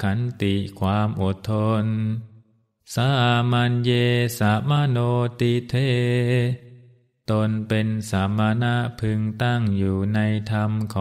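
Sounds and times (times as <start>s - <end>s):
man chanting in low voice: 0.0s - 11.0s.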